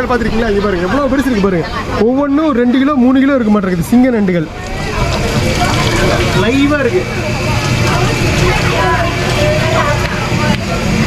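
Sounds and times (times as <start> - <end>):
distant voices: 0.0 - 11.0
steady dense noise: 0.0 - 11.0.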